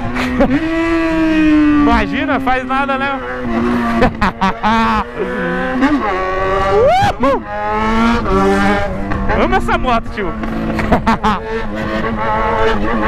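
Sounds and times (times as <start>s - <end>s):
motorcycle engine revving: 0.0s - 13.0s.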